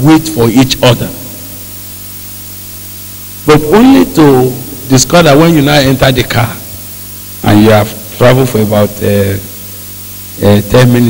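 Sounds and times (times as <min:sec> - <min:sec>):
low electrical hum: 0:00.0 - 0:11.0
microphone hiss: 0:00.0 - 0:11.0.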